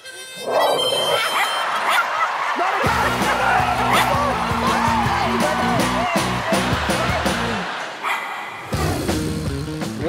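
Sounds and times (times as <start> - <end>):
audience laughter: 0.6 - 8.6
bass-heavy music: 2.9 - 7.7, 8.8 - 10.0.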